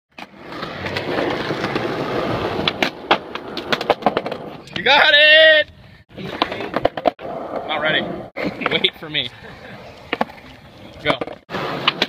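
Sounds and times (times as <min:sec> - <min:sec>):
skateboard wheels rolling on concrete: 0:00.1 - 0:12.0.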